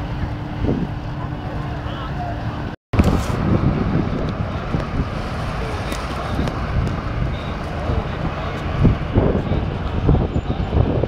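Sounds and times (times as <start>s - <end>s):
steady low rumble: 0.0s - 11.0s
wind buffeting microphone: 0.0s - 11.0s.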